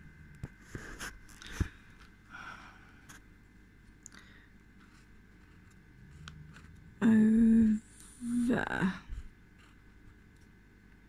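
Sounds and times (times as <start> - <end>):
person humming: 6.3 - 9.1.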